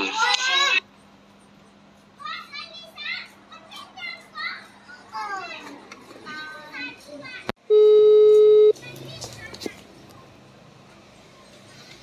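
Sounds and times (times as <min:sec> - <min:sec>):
children chattering and squealing: 0:02.1 - 0:07.5
loud steady beep: 0:07.7 - 0:08.7.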